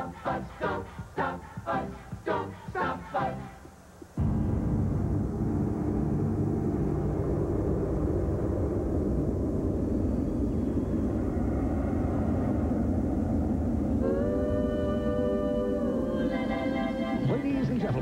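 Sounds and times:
faint held low tones: 0.0 - 18.0
loud steady low rumble: 4.2 - 17.4.

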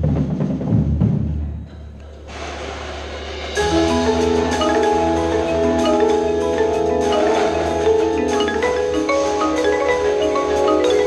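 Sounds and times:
percussion ensemble drums: 0.0 - 11.0.

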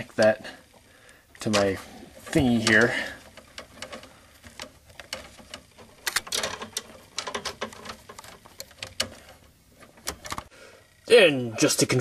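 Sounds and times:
wires rustling: 0.0 - 12.0
metallic clicks and scrapes of nut: 1.4 - 10.5.

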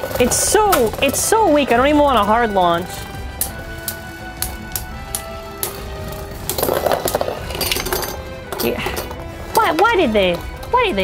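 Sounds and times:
background music: 0.0 - 11.0
spinning tops clashing: 3.4 - 9.2.

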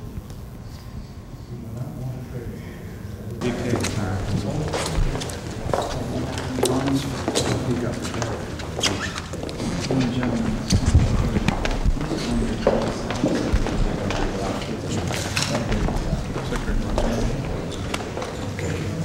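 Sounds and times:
murmur of people talking: 0.0 - 19.0.

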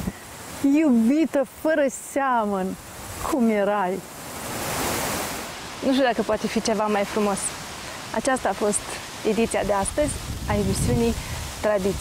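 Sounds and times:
gust of wind: 4.1 - 5.9, 9.6 - 12.0.

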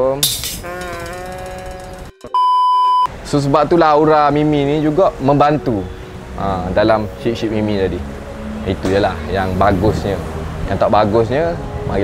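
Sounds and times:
high-pitched censor beep: 2.3 - 3.1.

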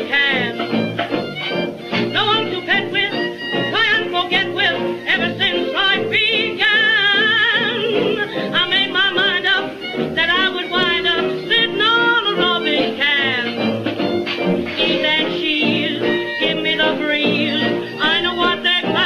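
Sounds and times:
old jazz band record: 0.0 - 19.0.

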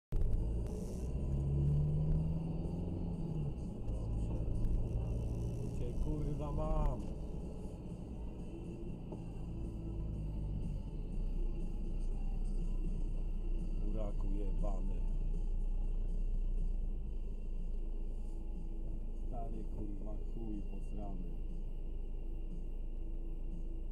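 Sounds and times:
car engine and road noise: 0.0 - 23.9.

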